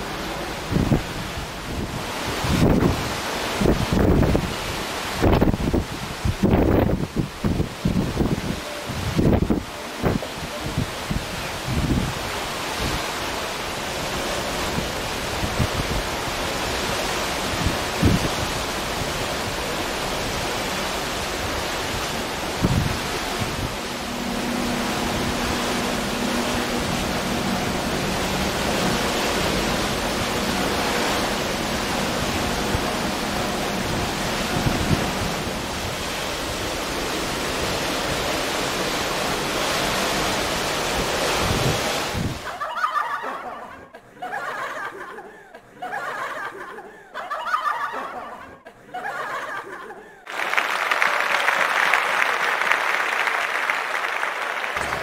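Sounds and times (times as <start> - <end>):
sea wash from ship: 0.0 - 55.0
wind buffeting microphone: 0.6 - 13.2, 14.6 - 20.5, 21.1 - 42.5.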